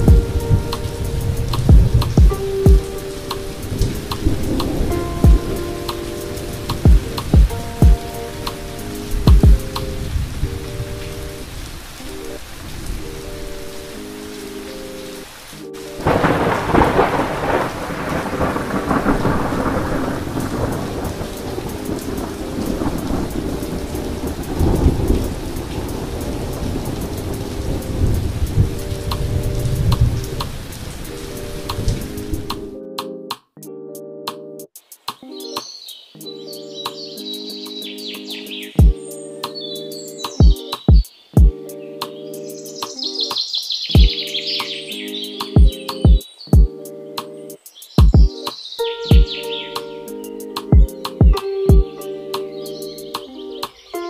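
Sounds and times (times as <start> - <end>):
loud thunderclap: 0.0 - 2.9, 16.0 - 31.0
thunder rumbling: 0.0 - 13.6, 15.9 - 32.6
steady rain: 0.0 - 32.8, 34.8 - 54.0.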